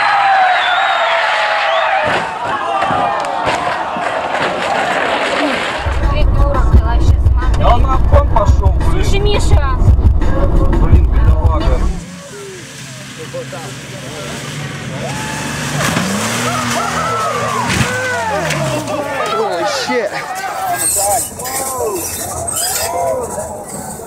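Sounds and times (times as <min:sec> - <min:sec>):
voices: 0:04.6 - 0:24.0
truck engine revving: 0:05.7 - 0:19.2
road rumble inside a car: 0:05.8 - 0:18.9.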